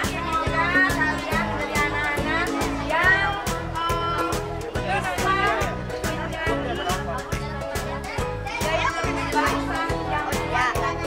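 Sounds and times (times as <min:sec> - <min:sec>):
background music with beat: 0:00.0 - 0:11.0
children's voices: 0:00.0 - 0:11.0.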